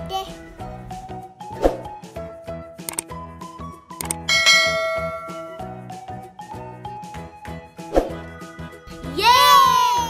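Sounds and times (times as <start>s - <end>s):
children's jingle with steady beat: 4.2s - 6.6s
bell-like chime: 4.3s - 5.8s.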